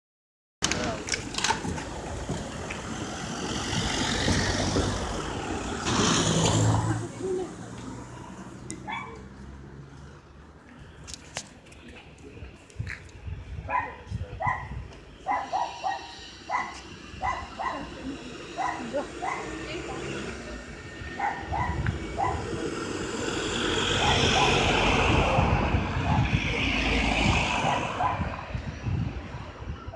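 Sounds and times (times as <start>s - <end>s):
motor vehicle passing: 1.7s - 11.4s, 14.6s - 29.5s
dog barking: 8.9s - 9.2s, 13.7s - 14.7s, 15.3s - 17.9s, 18.6s - 19.5s, 21.2s - 22.4s.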